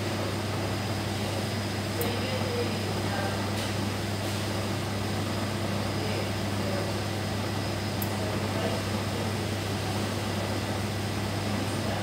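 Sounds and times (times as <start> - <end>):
pumps and fans humming: 0.0 - 12.0.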